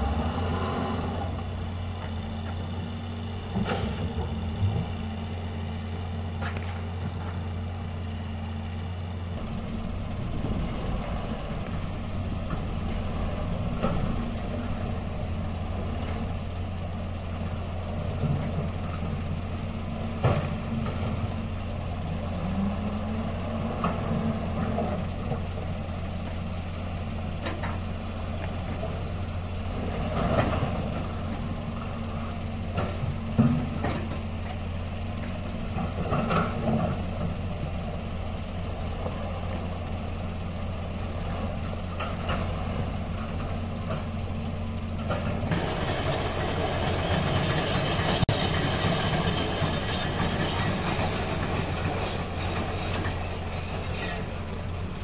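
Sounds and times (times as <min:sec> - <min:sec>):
diesel truck engine running: 0:00.0 - 0:55.0.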